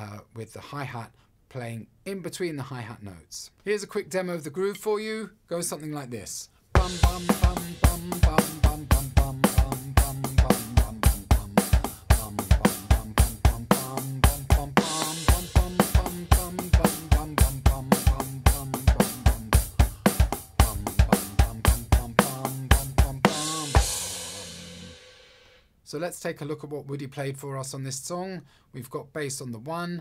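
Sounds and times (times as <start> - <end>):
electronic drum kit rock groove: 6.8 - 25.6
cymbal crash ringing: 23.4 - 25.6.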